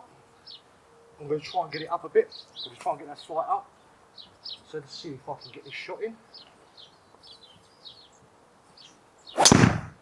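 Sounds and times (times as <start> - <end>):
birds chirping faintly: 0.0 - 10.0
golf club striking ball: 9.4 - 10.0.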